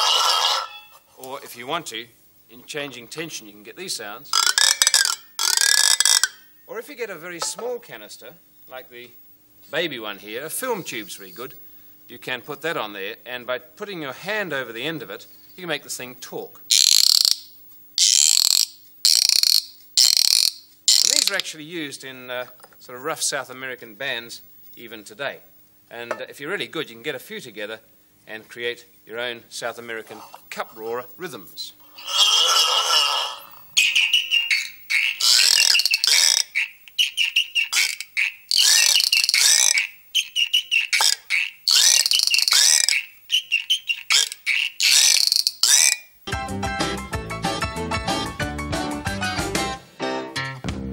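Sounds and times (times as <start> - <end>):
cup roarer creaking squawks: 0.0 - 1.1, 4.3 - 6.6, 16.7 - 21.5, 31.8 - 46.2.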